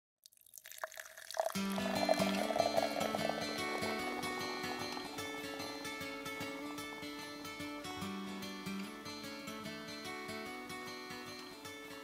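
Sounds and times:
liquid pouring: 0:00.2 - 0:07.8
instrumental music: 0:01.5 - 0:12.0.

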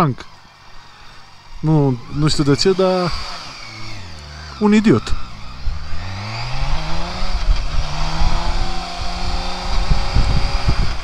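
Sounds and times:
motorcycle engine accelerating: 0:00.0 - 0:11.0
wind rumble on microphone: 0:01.8 - 0:11.0.

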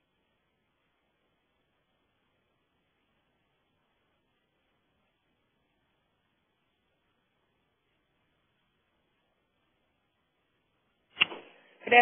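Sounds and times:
person speaking: 0:11.8 - 0:12.0.

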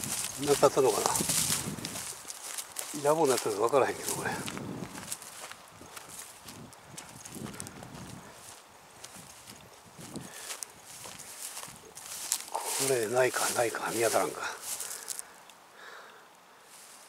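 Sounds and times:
footsteps through long grass: 0:00.0 - 0:15.4, 0:16.6 - 0:17.0.

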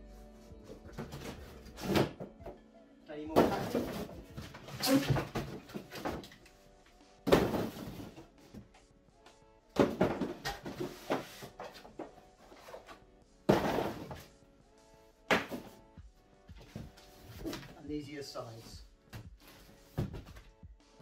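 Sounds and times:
faint music: 0:00.0 - 0:21.0.

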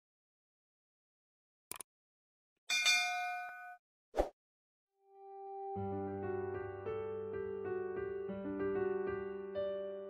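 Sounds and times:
notification bell ding: 0:02.7 - 0:03.8.

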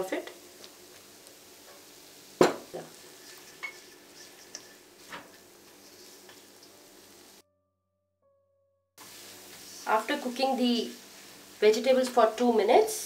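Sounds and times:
faint steady sizzle: 0:00.0 - 0:07.4, 0:09.0 - 0:13.0.

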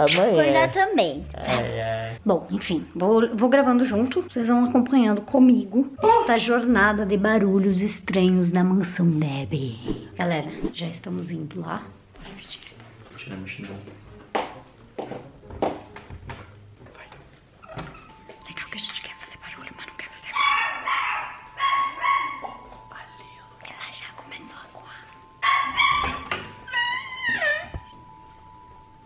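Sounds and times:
people whispering: 0:18.4 - 0:20.4, 0:22.9 - 0:25.2
dog whining and yelping: 0:20.4 - 0:22.6, 0:25.4 - 0:28.0.

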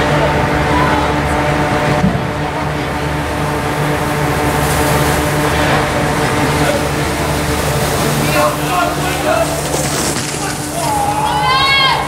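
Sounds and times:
mechanical drone with low hum: 0:00.0 - 0:12.0.

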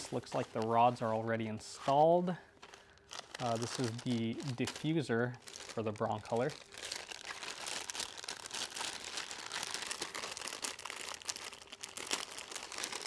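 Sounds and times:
plastic bag crinkling: 0:00.0 - 0:01.2, 0:02.6 - 0:13.0.

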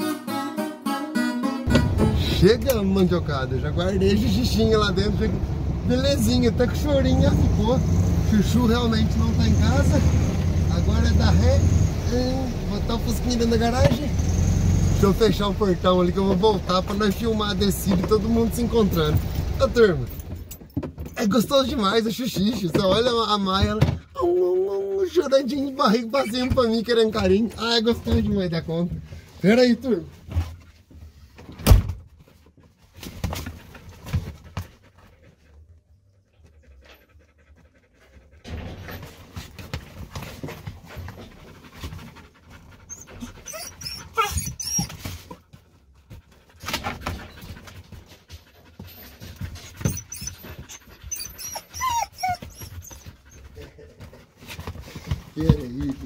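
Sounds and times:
dogs panting: 0:32.3 - 0:56.0
dog whining: 0:42.7 - 0:45.4, 0:48.8 - 0:53.6.

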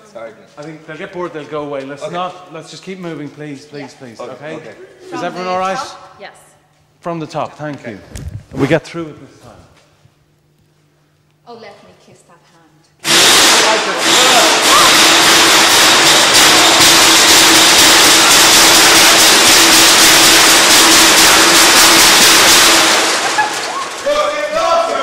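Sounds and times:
steady hum: 0:01.6 - 0:25.0
loud harsh noise: 0:13.0 - 0:25.0
overlapping voices: 0:22.6 - 0:25.0.

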